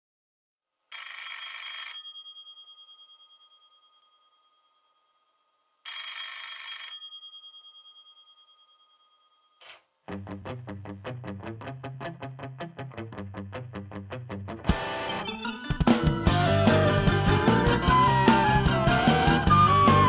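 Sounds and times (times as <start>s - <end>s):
telephone bell ringing: 0.9s - 9.6s.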